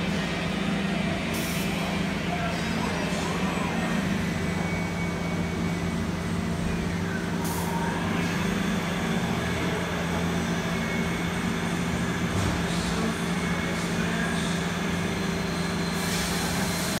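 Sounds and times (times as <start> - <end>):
lathe machine hum: 0.0 - 17.0
compressed air hiss: 15.9 - 17.0.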